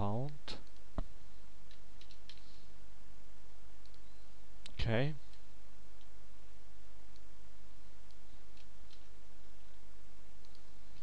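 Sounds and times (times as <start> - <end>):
low hum and hiss: 0.0 - 11.0
computer mouse clicks: 1.7 - 2.5, 3.8 - 5.4, 8.0 - 9.1, 10.4 - 11.0.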